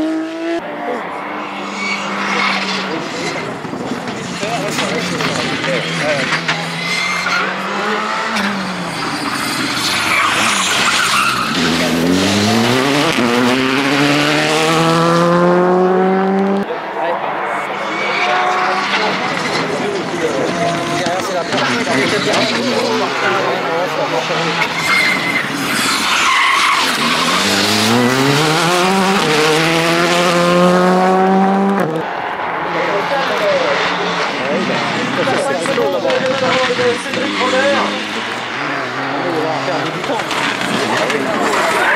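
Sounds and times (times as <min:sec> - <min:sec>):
rally cars passing at speed: 0:00.0 - 0:41.9.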